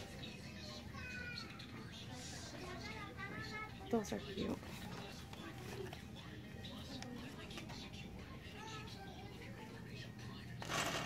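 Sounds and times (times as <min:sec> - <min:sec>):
murmur of store chatter: 0:00.0 - 0:11.0.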